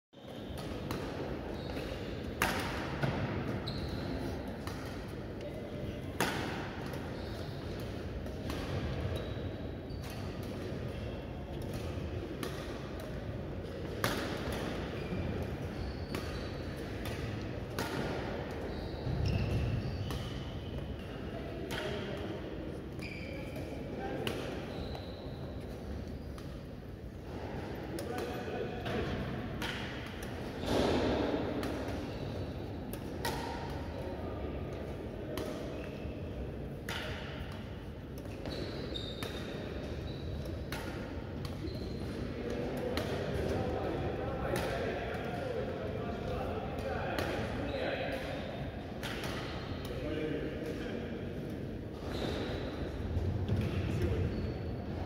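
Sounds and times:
rackets striking shuttlecock: 0.6 - 3.3, 13.8 - 14.8, 28.0 - 32.1, 32.9 - 33.8, 36.8 - 38.6, 40.4 - 43.6, 47.2 - 47.5, 49.0 - 50.0.

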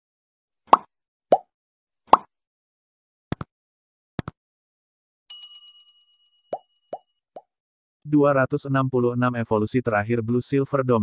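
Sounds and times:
cartoon pop sound effects: 2.1 - 2.3.

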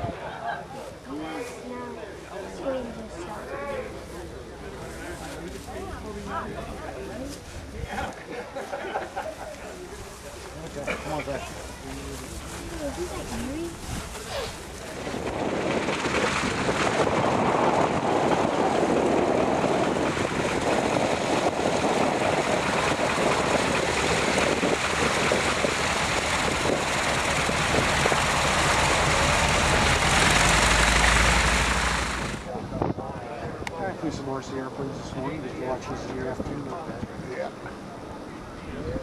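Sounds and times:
radial aircraft engine running: 10.4 - 32.5.

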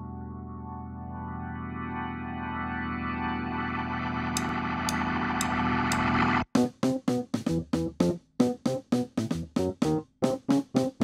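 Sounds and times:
sustained keyboard chord: 0.0 - 7.2.

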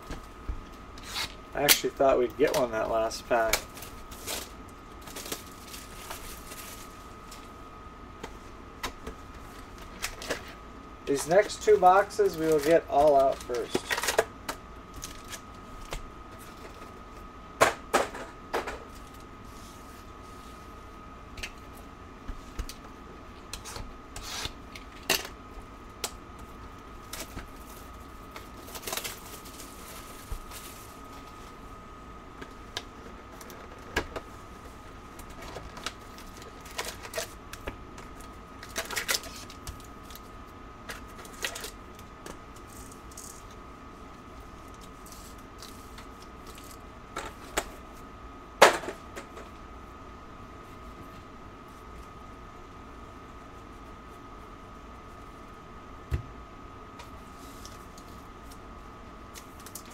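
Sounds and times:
card packs rustling and crinkling: 1.0 - 7.6, 8.8 - 17.2, 26.5 - 31.6, 32.4 - 43.6.

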